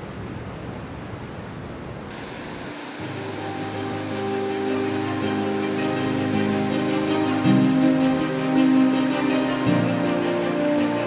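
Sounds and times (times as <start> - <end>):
river water rushing over rocks: 2.1 - 11.0
music of long held notes: 2.6 - 11.0.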